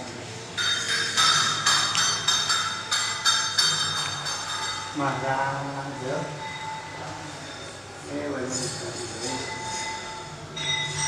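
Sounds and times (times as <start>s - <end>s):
metal temple bell ringing: 0.6s - 7.9s, 9.0s - 11.0s.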